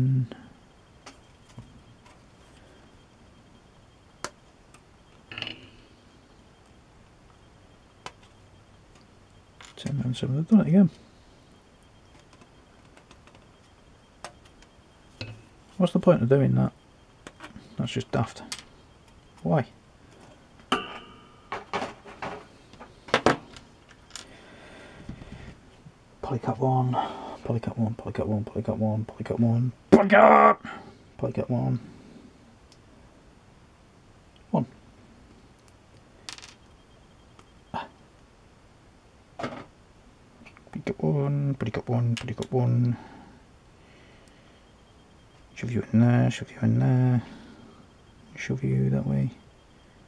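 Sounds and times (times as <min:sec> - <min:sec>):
plastic parts clicking and tapping: 0:12.1 - 0:13.6.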